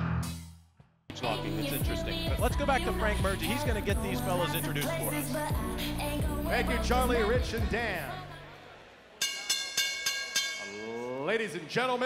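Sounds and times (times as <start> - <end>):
bell ringing: 9.2 - 11.2.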